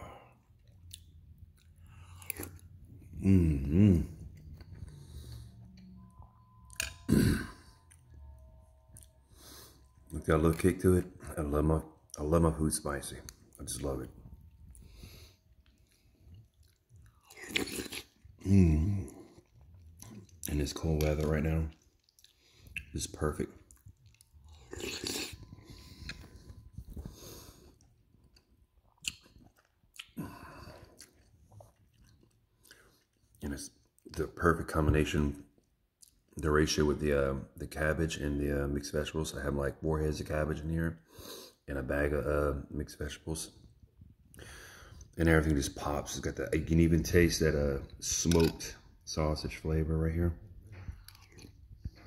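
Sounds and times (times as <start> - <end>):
closed-mouth chewing: 13.2 - 34.2.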